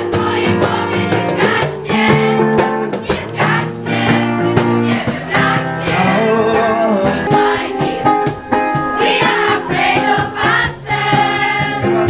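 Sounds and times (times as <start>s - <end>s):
girls singing in unison: 0.0s - 6.2s, 7.2s - 12.0s.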